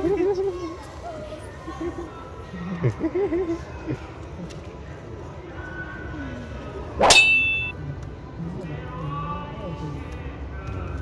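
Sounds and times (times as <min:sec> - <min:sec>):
sharp metallic clang: 0:07.0 - 0:07.8.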